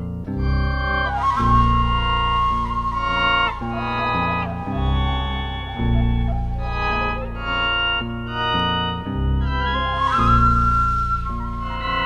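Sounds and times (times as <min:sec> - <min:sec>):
electric guitar with effects: 0:00.0 - 0:12.0.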